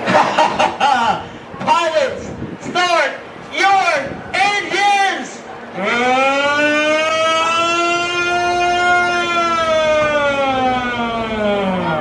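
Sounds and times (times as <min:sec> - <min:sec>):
coaster lift drive whining: 0:00.0 - 0:12.0.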